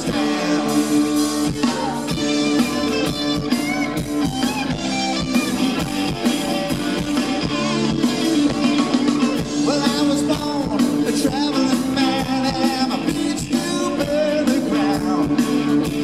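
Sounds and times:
drum kit: 0.0s - 16.0s
electric guitars: 0.0s - 16.0s.

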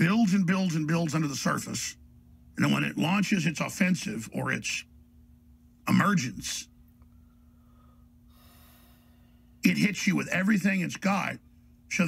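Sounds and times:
faint steady hum: 0.0s - 12.0s
faint breathy hiss: 7.1s - 9.6s.

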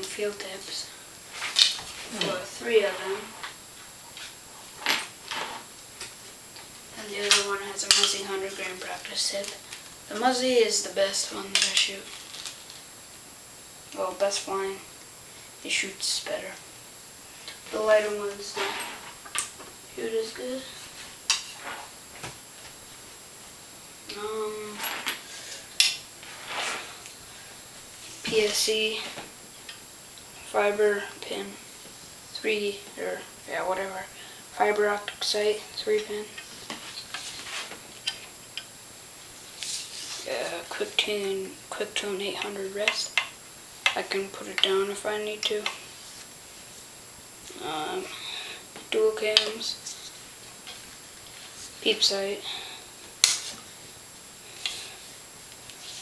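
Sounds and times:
faint room hiss: 0.0s - 56.0s.

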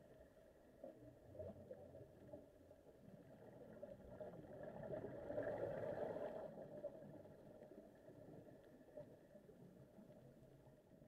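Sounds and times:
underwater ambience: 0.0s - 11.0s.

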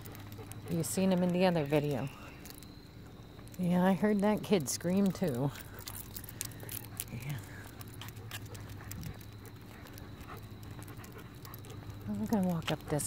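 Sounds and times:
dog claws clicking on asphalt: 0.0s - 13.0s
low steady hum: 0.0s - 13.0s.

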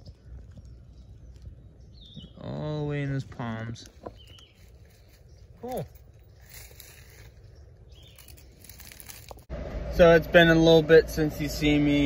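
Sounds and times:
dry leaves crackling: 3.8s - 9.5s
vehicle cabin hum: 9.4s - 12.0s.

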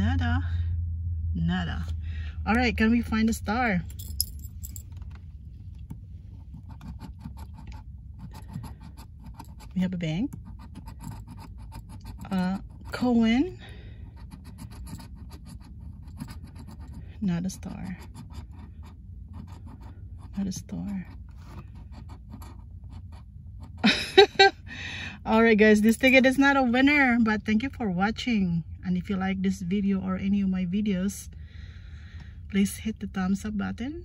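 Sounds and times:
low steady hum: 0.0s - 34.0s.

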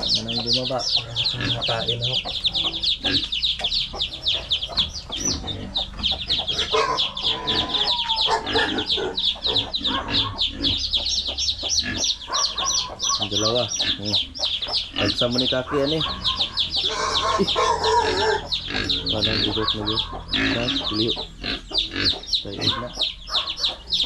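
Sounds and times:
chicks peeping: 0.0s - 24.0s
hen clucking: 0.0s - 24.0s.

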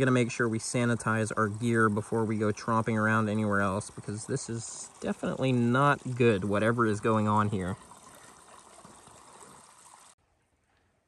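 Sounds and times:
creek trickling: 0.0s - 10.2s.

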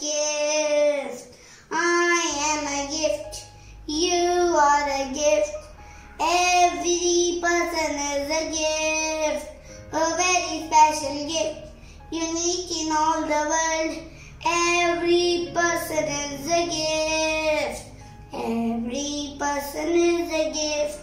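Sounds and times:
boy singing: 0.0s - 5.6s, 6.2s - 21.0s.

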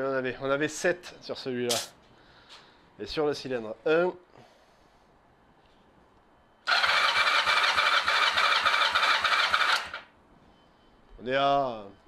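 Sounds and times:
engine cranking by electric starter: 6.6s - 10.1s.

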